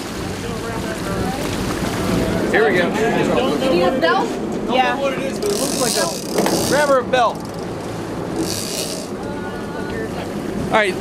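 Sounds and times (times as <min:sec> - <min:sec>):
boat engine running: 0:00.0 - 0:11.0
water washing: 0:00.0 - 0:11.0.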